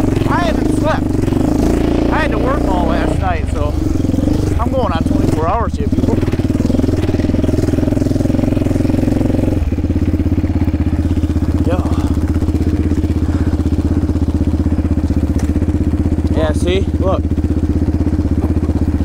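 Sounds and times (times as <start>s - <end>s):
quad engine running and idling: 0.0s - 19.0s.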